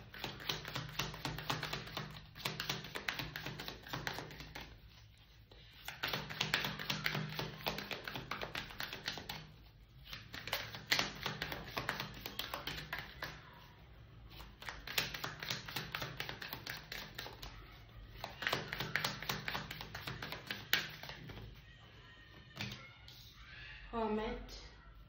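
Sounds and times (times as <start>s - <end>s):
cards being shuffled: 0.0s - 13.7s, 14.3s - 21.6s.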